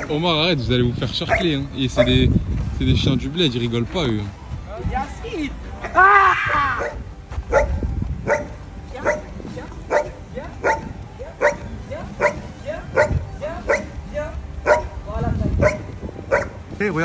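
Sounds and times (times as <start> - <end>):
dog barking: 1.2 - 2.2, 6.8 - 9.3, 9.9 - 14.0, 14.6 - 15.0, 15.6 - 16.6.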